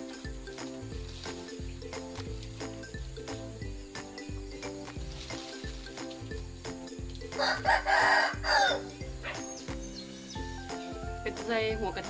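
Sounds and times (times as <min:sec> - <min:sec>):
background music with beat: 0:00.0 - 0:12.0
rooster crowing: 0:07.4 - 0:08.9.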